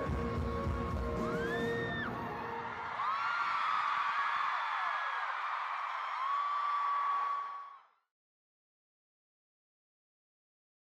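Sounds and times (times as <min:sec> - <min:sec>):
music with heavy beat: 0:00.0 - 0:01.5
crowd screaming and cheering: 0:00.0 - 0:08.0.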